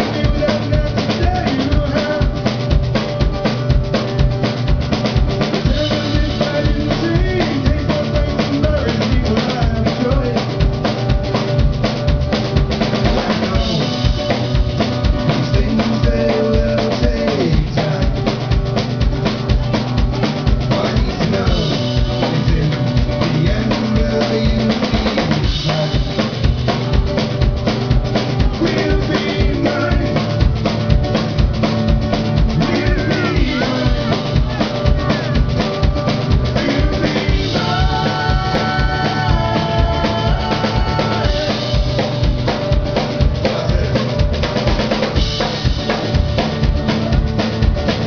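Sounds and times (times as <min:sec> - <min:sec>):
amplified acoustic guitar: 0:00.0 - 0:48.0
drum kit beat: 0:00.0 - 0:48.0
live rock band playing: 0:00.0 - 0:48.0.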